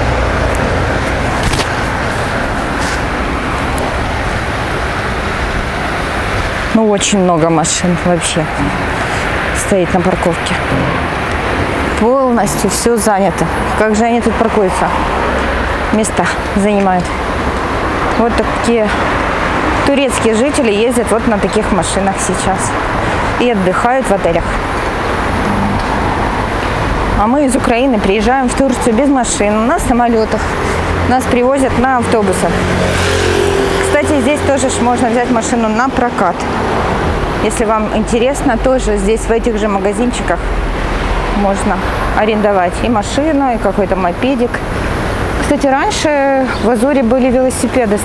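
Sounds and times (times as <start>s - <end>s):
road traffic rumble: 0.0s - 48.0s
rushing street noise: 0.0s - 48.0s.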